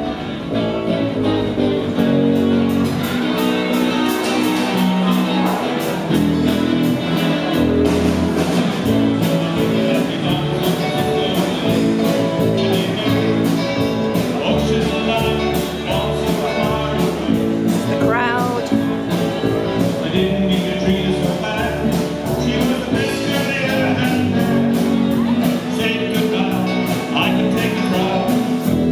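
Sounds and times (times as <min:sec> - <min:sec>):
live band music: 0:00.0 - 0:28.9
person singing: 0:14.5 - 0:18.9.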